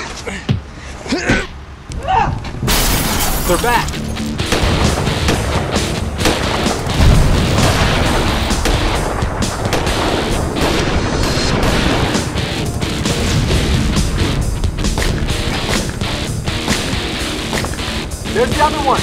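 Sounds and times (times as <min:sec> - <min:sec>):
action film music: 0:03.6 - 0:19.0
gunshots: 0:04.4 - 0:12.5
explosion boom: 0:07.0 - 0:12.2.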